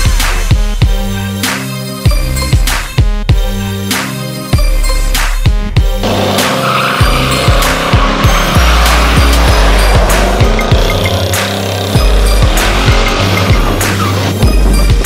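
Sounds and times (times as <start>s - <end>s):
hip hop music: 0.0s - 15.0s
car tires squealing: 6.0s - 14.9s.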